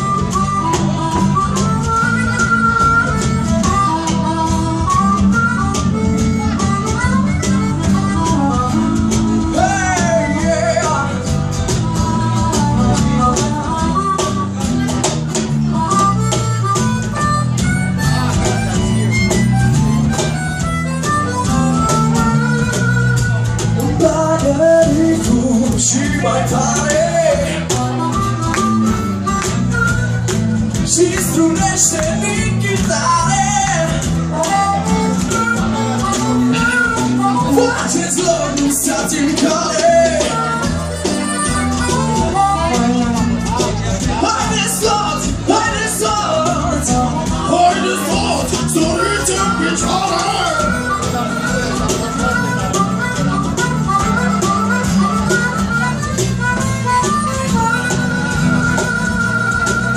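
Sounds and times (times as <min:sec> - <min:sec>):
blues-rock band playing: 0:00.0 - 0:59.9
cajon beat: 0:00.0 - 0:59.9
electric bass: 0:00.0 - 0:59.9
harmonica solo: 0:00.0 - 0:59.9
strummed acoustic guitars: 0:00.0 - 0:59.9
wavering lead melody: 0:00.0 - 0:59.9.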